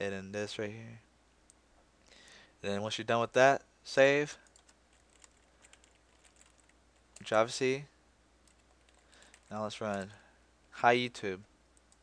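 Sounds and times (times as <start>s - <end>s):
keyboard typing: 4.4s - 7.3s, 8.4s - 10.2s.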